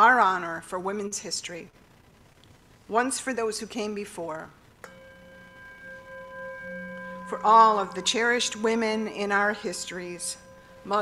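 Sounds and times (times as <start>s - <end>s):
metal singing bowl ringing: 4.8s - 11.0s.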